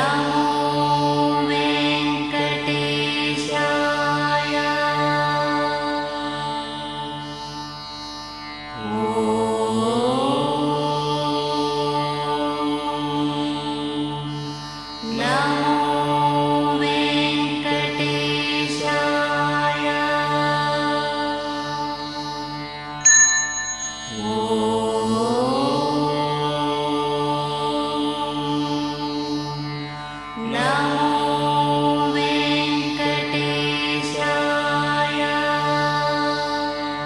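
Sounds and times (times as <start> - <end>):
mantras chanted: 0.0 - 37.0
sharp metallic strike: 23.0 - 24.6.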